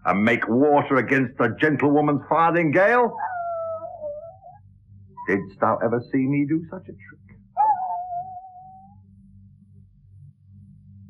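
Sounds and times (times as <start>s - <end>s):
man imitating dog whine: 3.1s - 4.6s, 7.6s - 9.0s.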